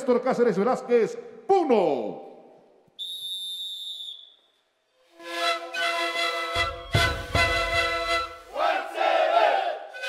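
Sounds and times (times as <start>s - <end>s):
panpipes sustained tones: 5.0s - 8.6s
group of voices shouting: 8.5s - 9.9s.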